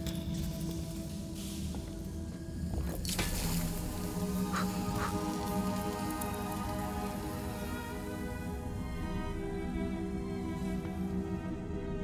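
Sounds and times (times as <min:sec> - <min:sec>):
soft orchestral music: 0:00.0 - 0:12.0.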